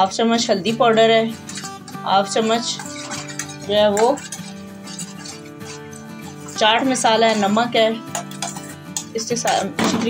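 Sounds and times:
background guitar music: 0.0s - 10.0s
metal spoon scraping frying pan: 0.4s - 10.0s.

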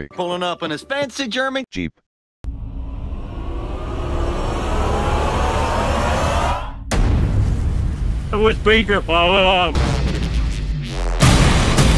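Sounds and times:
rising whine: 2.4s - 7.0s
deep boom rumble: 2.4s - 11.9s
noisy rush: 2.5s - 10.4s.

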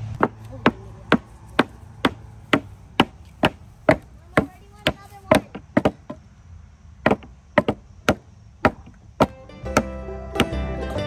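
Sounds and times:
hammer striking wooden boards: 0.2s - 6.2s, 7.0s - 10.7s.

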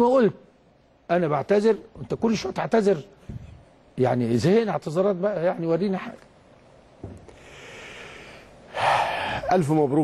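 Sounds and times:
man breathing: 7.3s - 9.5s.

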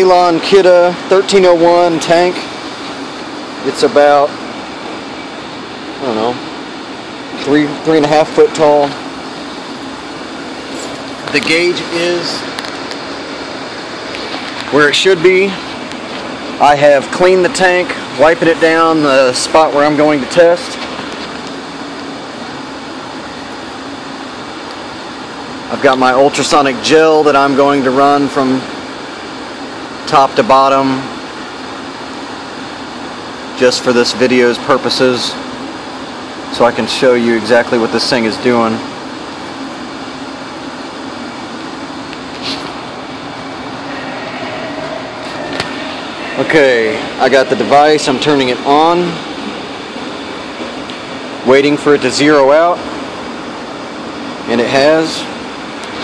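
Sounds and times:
ventilation hum: 0.0s - 56.0s.

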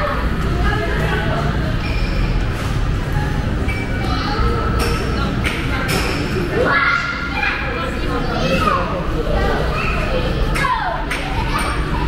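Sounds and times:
children chattering and calling: 0.0s - 1.8s, 3.1s - 12.0s.

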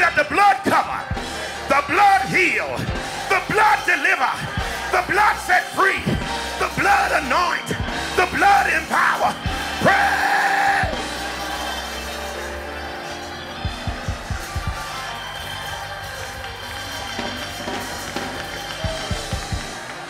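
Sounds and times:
sustained keyboard chords: 0.0s - 20.0s
drum kit hits: 13.6s - 15.1s.

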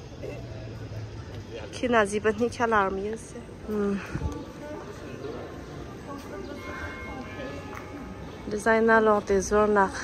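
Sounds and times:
distant voices murmuring: 0.0s - 10.0s
footsteps on cobblestones: 0.8s - 10.0s.

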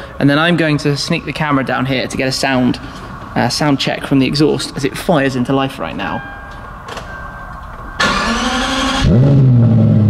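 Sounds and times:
car engine starting: 6.5s - 10.0s
starter cranking engine: 8.0s - 9.2s.

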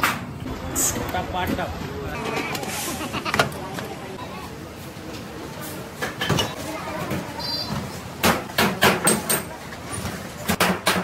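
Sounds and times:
traffic: 0.0s - 10.6s.

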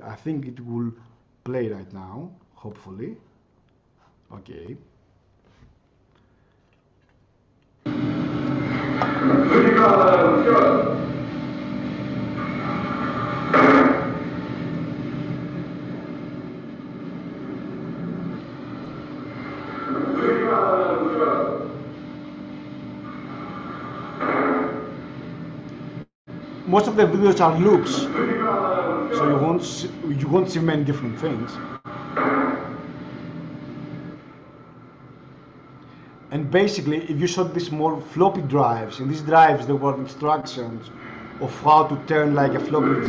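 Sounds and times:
steady droning noise: 7.8s - 43.0s
steady low rumble: 7.9s - 38.4s.

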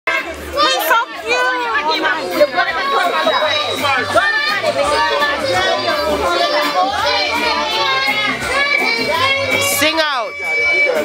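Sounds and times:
boy talking: 0.6s - 10.0s.

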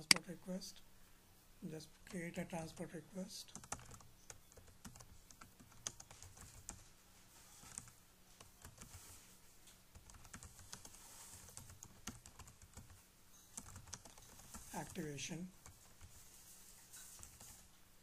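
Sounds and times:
faint computer keyboard typing: 3.4s - 6.9s, 7.6s - 15.0s, 15.6s - 16.4s, 17.0s - 17.7s.

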